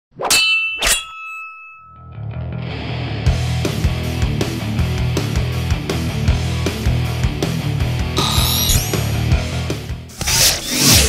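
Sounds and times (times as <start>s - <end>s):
ringing metallic clangs: 0.2s - 2.4s.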